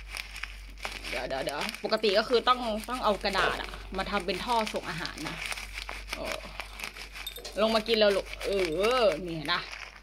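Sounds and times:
plastic snack bag crinkling: 0.0 - 10.0
seeds pouring into a bowl: 0.0 - 10.0.

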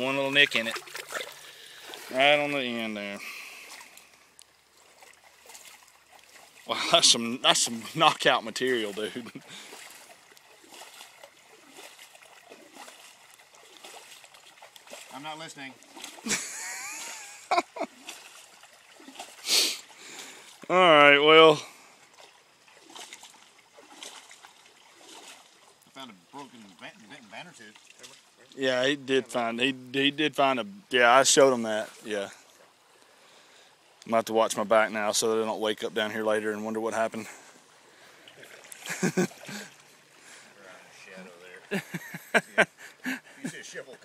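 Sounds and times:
soft water splashes: 0.0 - 29.4, 31.4 - 35.4, 36.0 - 43.9
outdoor background hiss: 0.0 - 44.0
water trickling: 0.0 - 44.0.

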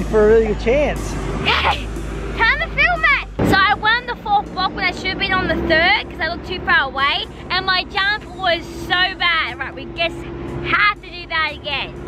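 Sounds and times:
girl talking: 1.4 - 12.0.

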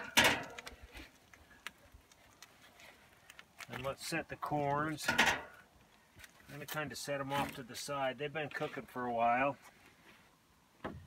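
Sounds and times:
metal grate clanking on grill: 0.0 - 0.6, 5.0 - 5.6.

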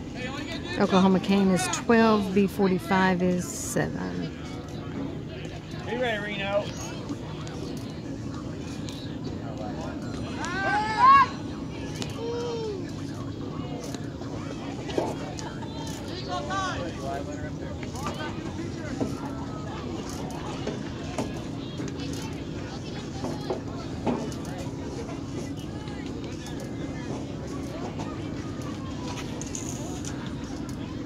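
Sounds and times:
crowd calling and chattering: 0.0 - 31.0
steady low hum: 0.0 - 31.0
loud shout: 10.4 - 11.4.

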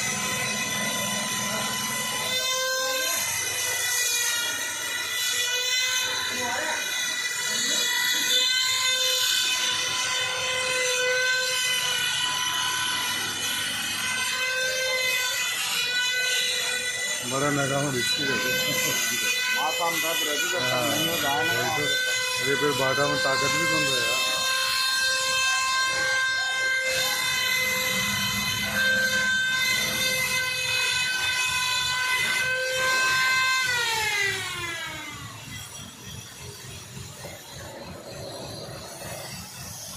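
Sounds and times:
crane high whine: 0.0 - 39.9.

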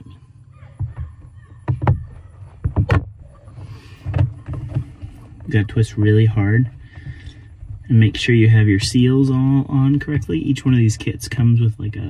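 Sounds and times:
hollow knocks on plastic can: 0.8 - 3.2.

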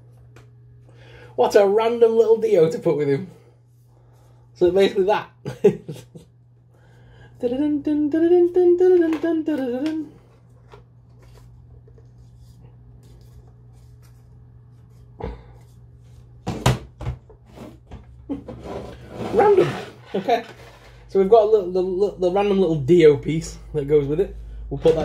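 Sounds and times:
steady low hum: 0.0 - 25.0
man laughing: 5.4 - 6.3.

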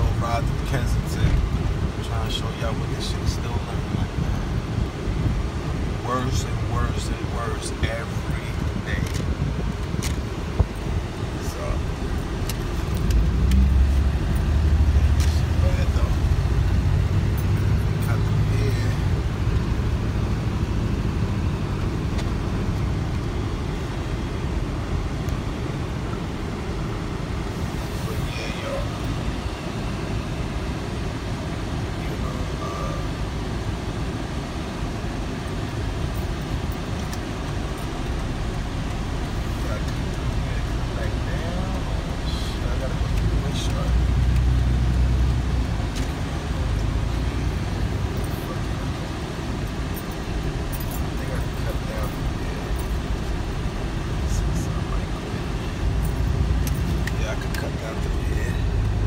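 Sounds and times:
car engine and road noise: 0.0 - 59.0.

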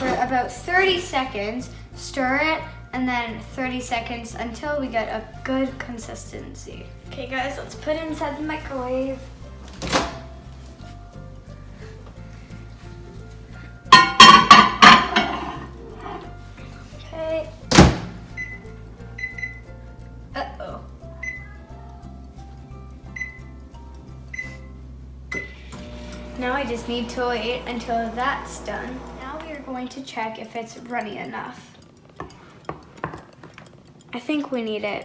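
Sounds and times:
high keypad beeps: 18.4 - 18.6, 19.2 - 19.6, 23.2 - 23.5, 24.3 - 24.6
loud jumble of sound: 25.9 - 29.8.

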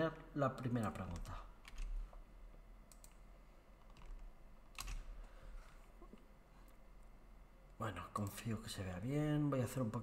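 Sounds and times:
computer keyboard and mouse clicks: 0.8 - 2.0, 2.9 - 3.2, 3.8 - 5.1.

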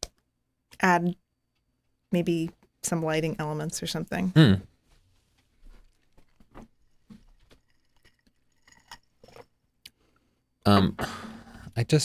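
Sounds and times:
small handling noises: 4.8 - 10.4.

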